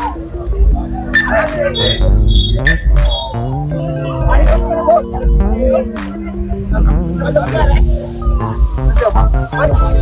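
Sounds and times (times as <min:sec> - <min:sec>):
crowd voices: 0:00.0 - 0:10.0
organ music over loudspeakers: 0:00.0 - 0:10.0.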